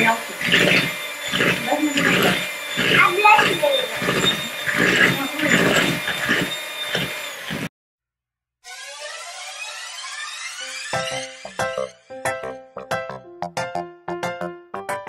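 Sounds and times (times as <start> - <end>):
voices: 0.0 - 6.5
electric hand mixer running: 0.0 - 7.7, 8.7 - 11.9
music with sweeping tones: 9.2 - 13.8.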